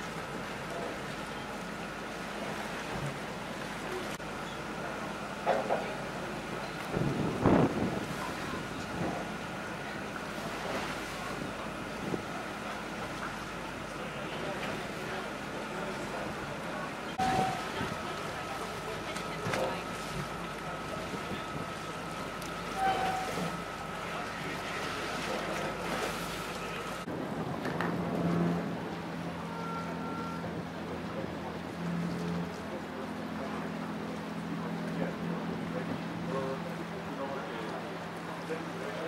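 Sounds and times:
boat engine: 0.0 - 39.0
choppy water: 0.0 - 39.0
wind: 0.0 - 39.0.

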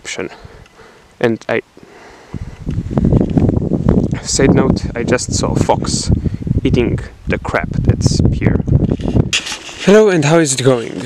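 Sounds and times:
wind buffeting microphone: 2.2 - 11.0.

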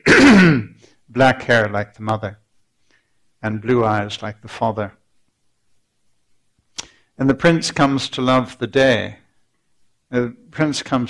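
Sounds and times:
person speaking: 1.1 - 2.4, 3.4 - 5.0, 6.7 - 9.3, 10.1 - 11.0.

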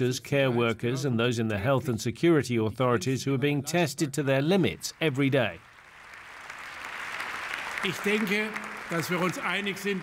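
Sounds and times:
applause: 4.8 - 10.0.

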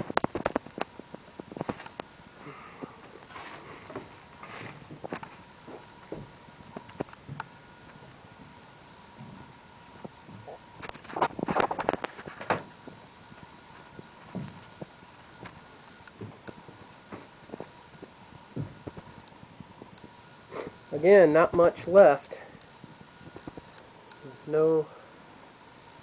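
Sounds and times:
footsteps on bare floor: 18.5 - 19.1.

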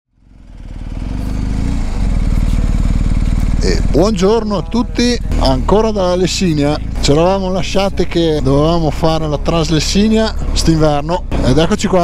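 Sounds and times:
motorcycle engine idling: 0.1 - 12.0.

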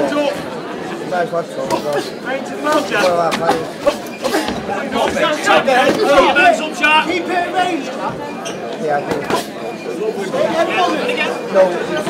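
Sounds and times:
crowd shouting and chattering: 0.0 - 12.0.

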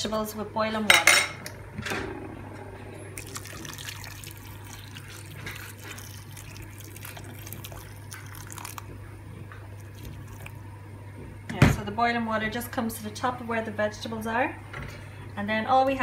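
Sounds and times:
water pouring into metal pot: 3.2 - 8.9.

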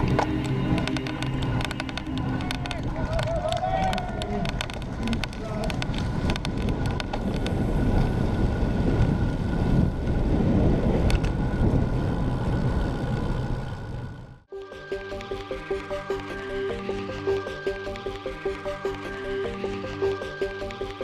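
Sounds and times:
wind rushing over microphone: 0.0 - 14.4
bike tyre and road noise: 0.0 - 21.0.

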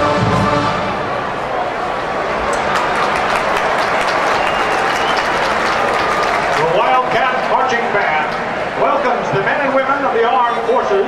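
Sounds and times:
stadium crowd applauding: 1.2 - 10.8
man speaking over public address: 6.6 - 11.0.

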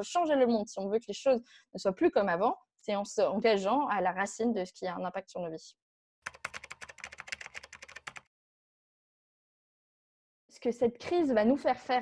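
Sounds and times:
rapid keyboard typing: 6.2 - 8.3.

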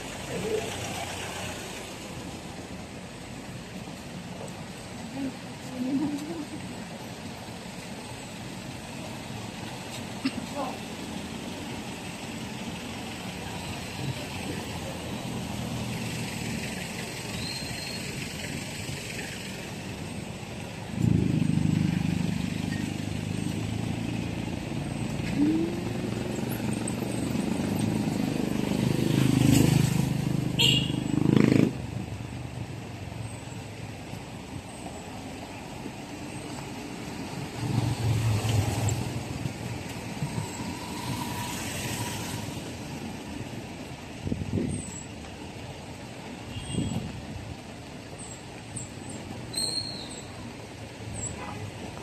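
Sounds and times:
street traffic noise: 0.0 - 52.0.

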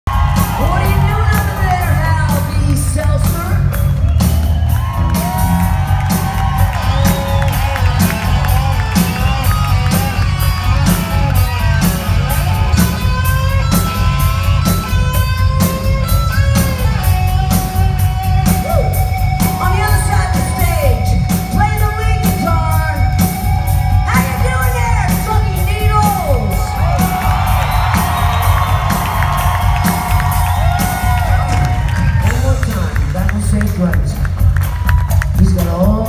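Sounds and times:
heavy bass: 0.0 - 36.0
electric guitars: 0.1 - 35.5
drums keeping a steady beat: 0.1 - 36.0.

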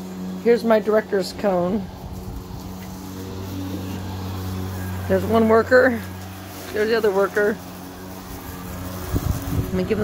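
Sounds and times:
lawn mower engine running: 0.0 - 10.0.

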